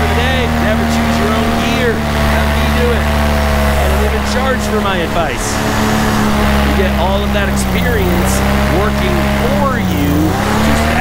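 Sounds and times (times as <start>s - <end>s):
paramotor engine droning: 0.0s - 11.0s.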